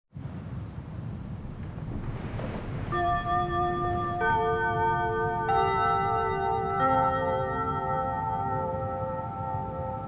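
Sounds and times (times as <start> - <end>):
low steady rumble: 0.2 - 8.1
bell-like musical notes: 2.8 - 10.0.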